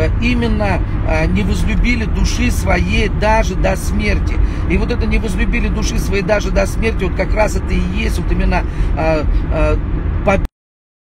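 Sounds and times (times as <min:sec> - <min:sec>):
low rumble of car cabin: 0:00.0 - 0:10.5
man talking: 0:00.0 - 0:10.5.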